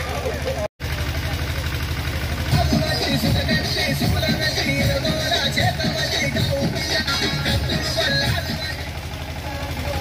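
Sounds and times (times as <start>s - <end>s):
faint voices: 0.0s - 10.0s
low pulsing engine-like hum: 0.0s - 10.0s.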